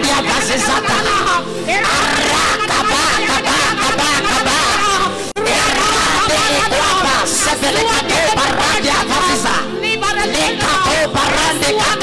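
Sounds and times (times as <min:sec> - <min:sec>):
church music: 0:00.0 - 0:12.0
man praying into a microphone: 0:00.0 - 0:12.0.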